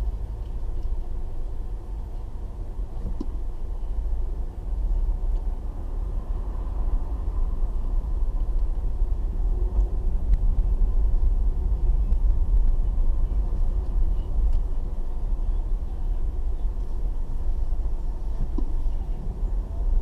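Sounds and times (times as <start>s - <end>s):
car engine and road rumble: 0.0s - 20.0s.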